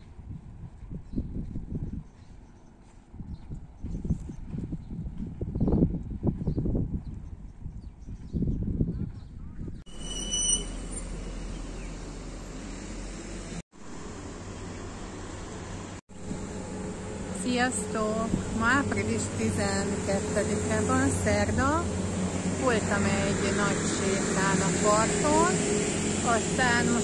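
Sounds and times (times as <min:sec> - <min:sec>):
wind buffeting microphone: 0:00.0 - 0:09.9, 0:16.3 - 0:27.0
outdoor street hum: 0:00.0 - 0:27.0
distant traffic: 0:09.9 - 0:27.0.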